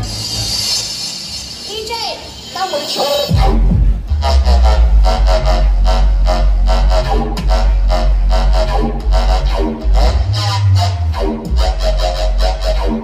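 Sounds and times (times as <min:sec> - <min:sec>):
loud dubstep music: 0:02.3 - 0:13.0.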